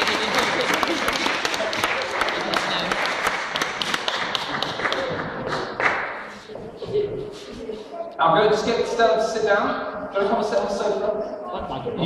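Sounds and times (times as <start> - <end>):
audience applauding: 0.0 - 6.5.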